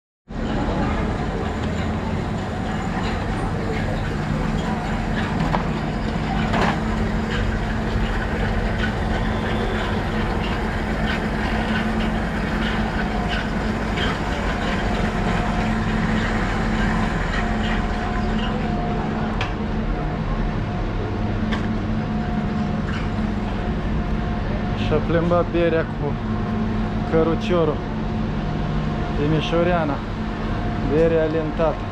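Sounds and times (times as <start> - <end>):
steady low hum: 0.3 - 31.9
pallet jack wheels rattling: 0.5 - 19.3.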